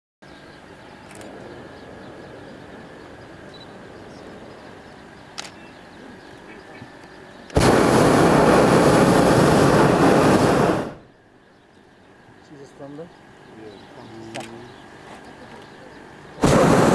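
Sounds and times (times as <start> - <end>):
low steady background: 0.2 - 16.9
propane burner blast: 1.1 - 11.1, 16.2 - 16.9.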